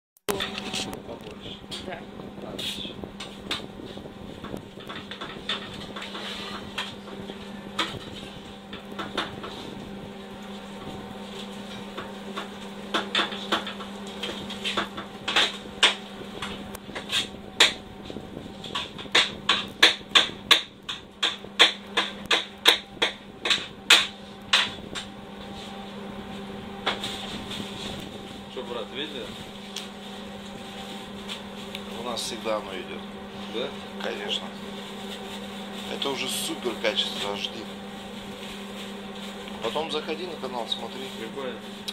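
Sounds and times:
low hum of kitchen equipment: 0.3s - 41.9s.

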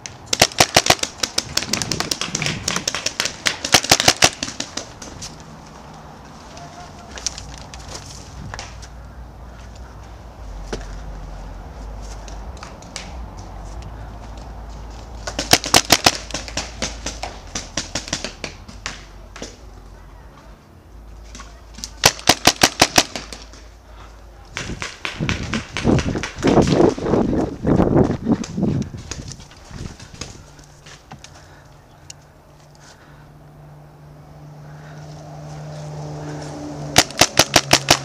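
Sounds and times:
paintball marker firing: 0.3s - 5.1s, 15.2s - 19.5s, 21.8s - 23.7s, 37.0s - 38.0s
footsteps on gravel: 5.0s - 12.6s, 25.2s - 31.9s.

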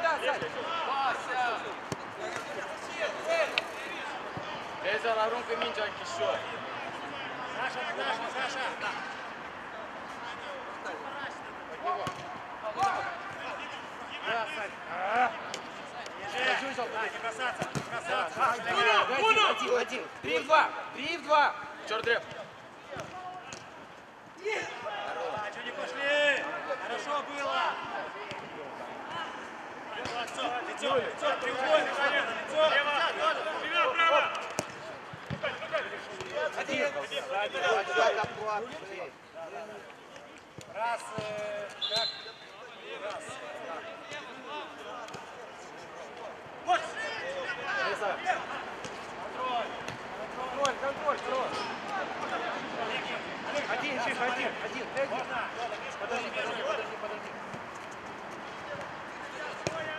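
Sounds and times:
players shouting: 0.0s - 9.2s, 10.1s - 39.0s, 46.3s - 57.3s, 58.6s - 59.9s
ball kicked and bouncing: 12.0s - 12.3s, 34.4s - 35.5s.

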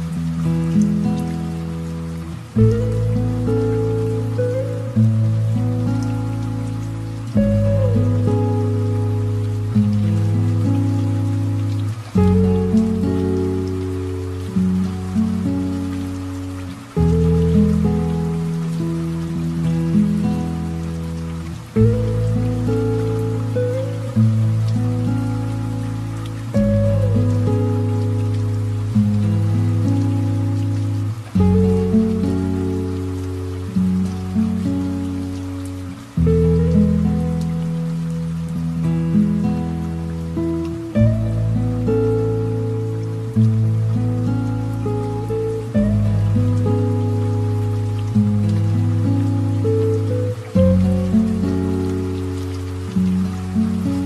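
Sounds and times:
light rain pattering: 0.0s - 54.0s.

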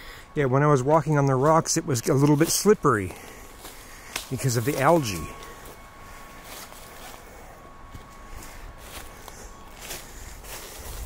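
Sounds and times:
footsteps on leafy path: 0.0s - 11.0s.

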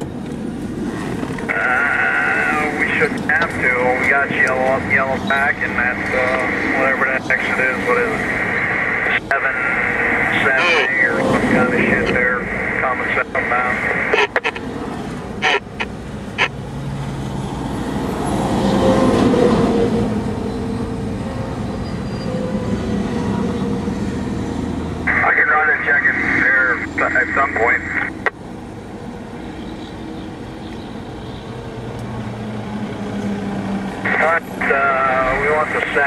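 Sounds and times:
tinny two-way radio voice: 1.5s - 14.6s, 15.4s - 15.7s, 25.1s - 28.2s, 34.0s - 36.0s.

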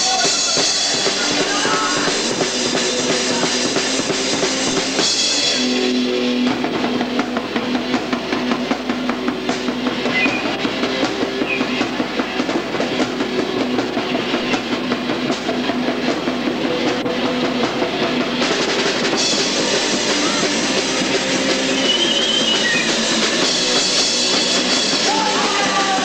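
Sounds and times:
drum kit fast beat: 0.0s - 26.0s
electric guitar: 0.0s - 26.0s.

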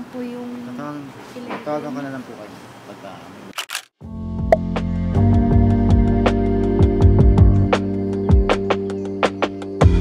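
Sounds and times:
camera shutter clicking: 3.5s - 3.9s.

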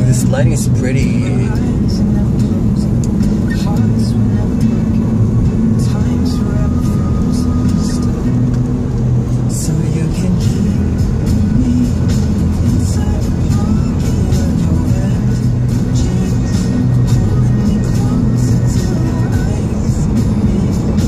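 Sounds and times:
car road hum: 0.0s - 21.0s
pop song on car stereo: 0.0s - 21.0s.

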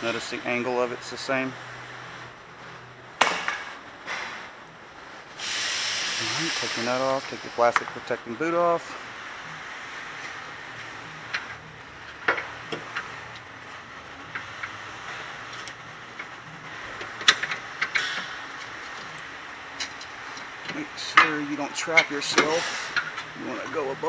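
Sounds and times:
steady background hiss: 0.0s - 24.0s.

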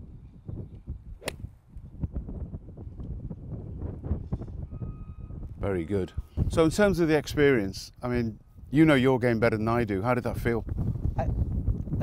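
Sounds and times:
golf club striking ball: 1.2s - 1.5s.

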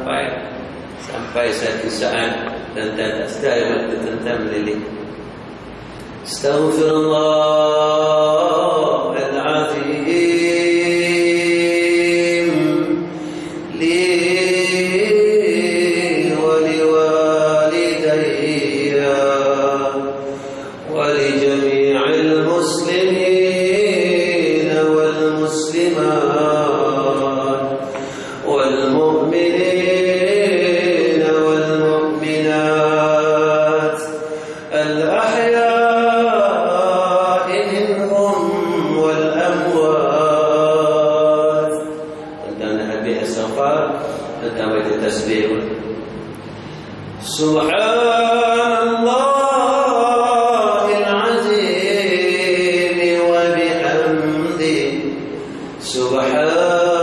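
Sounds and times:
man chanting: 0.0s - 5.2s, 6.2s - 46.2s, 47.2s - 57.0s.

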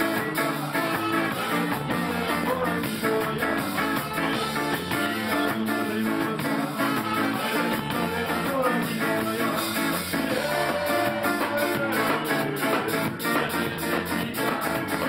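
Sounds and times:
ska band playing: 0.0s - 15.0s.

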